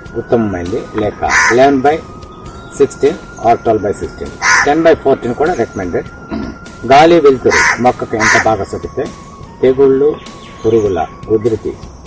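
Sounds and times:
person talking: 0.2s - 2.1s, 6.8s - 11.8s
short harsh calls: 4.4s - 4.7s, 7.5s - 8.5s.

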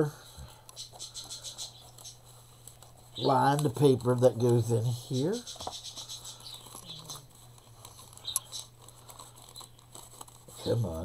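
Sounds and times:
paper rustling and scuffing: 0.9s - 11.0s.

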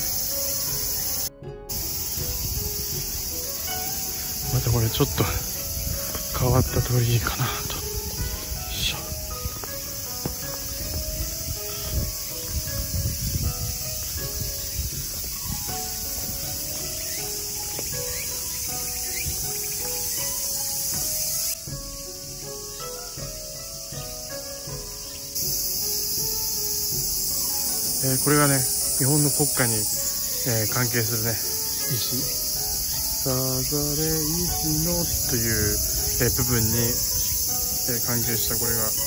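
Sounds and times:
cicadas buzzing: 0.0s - 39.0s
faint background music: 0.0s - 39.0s
footsteps thudding: 7.9s - 22.6s.

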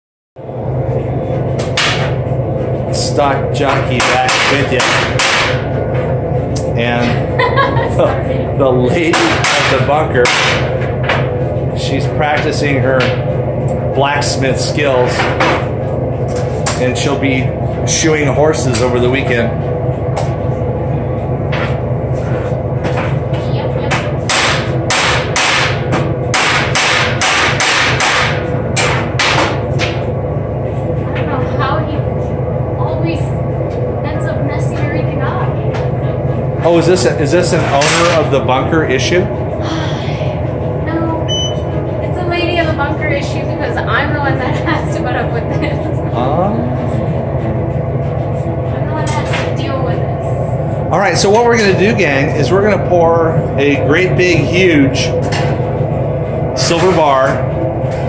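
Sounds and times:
machinery rumbling: 0.4s - 58.0s
steady low hum: 0.4s - 58.0s
hand hammer striking metal: 24.3s - 29.9s.

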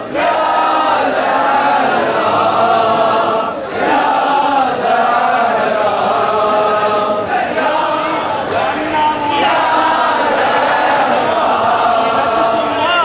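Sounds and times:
crowd of men chanting: 0.0s - 13.0s.

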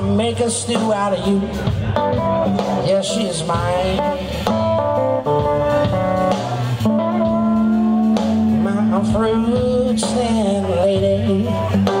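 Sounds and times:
person singing: 0.0s - 4.6s, 6.3s - 12.0s
bass guitar: 0.0s - 12.0s
drums: 0.0s - 12.0s.

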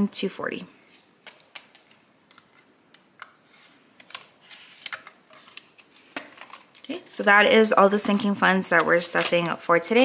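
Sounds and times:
paper banknotes rustling: 0.8s - 6.7s.

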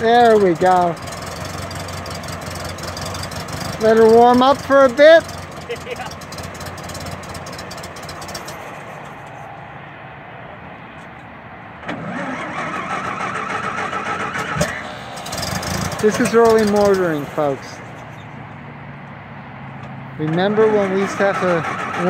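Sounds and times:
car engine idling: 0.0s - 9.8s, 12.0s - 22.0s.

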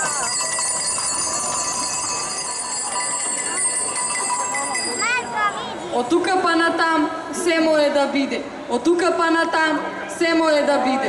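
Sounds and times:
small metal bells jingling: 0.0s - 5.6s.

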